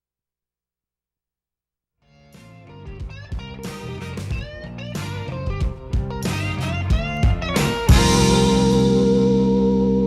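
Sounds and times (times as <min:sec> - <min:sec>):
guitar-led song: 0:02.0 - 0:10.0
sliding guitar notes: 0:02.1 - 0:10.0.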